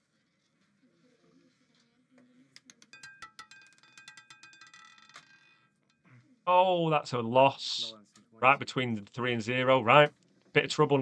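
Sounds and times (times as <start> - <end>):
roulette ball clattering: 2.6 - 6.0.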